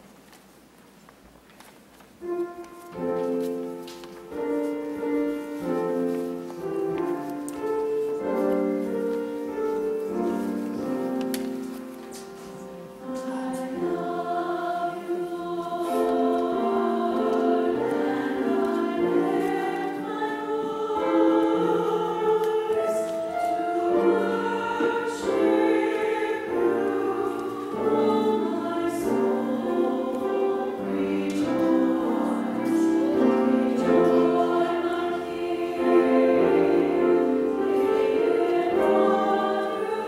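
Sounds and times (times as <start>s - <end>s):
choir singing: 3.0s - 40.0s.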